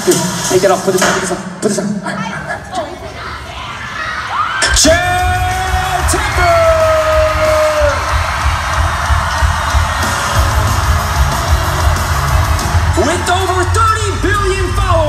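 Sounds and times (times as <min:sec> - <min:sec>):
loud concert music with bass beat: 0:00.0 - 0:02.1, 0:04.6 - 0:15.0
crowd screaming: 0:03.2 - 0:15.0.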